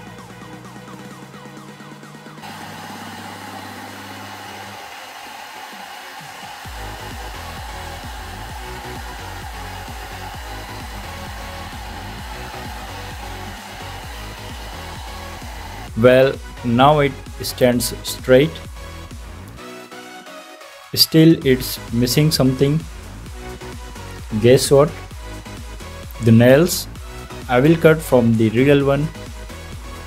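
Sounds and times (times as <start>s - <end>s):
hair dryer blowing: 2.3s - 16.0s.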